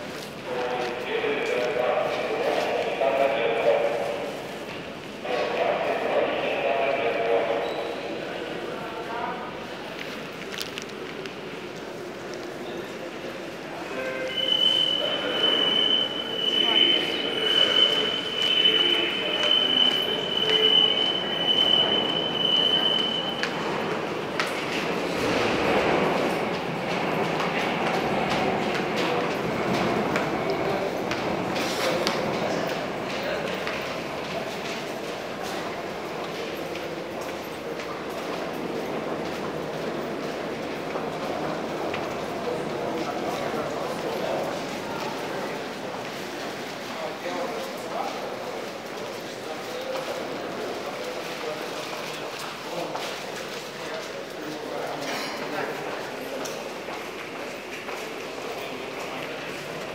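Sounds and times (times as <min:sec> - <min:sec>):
crowd walking and talking: 0:00.0 - 0:59.9
metro train squeal: 0:07.4 - 0:08.5, 0:13.8 - 0:23.9.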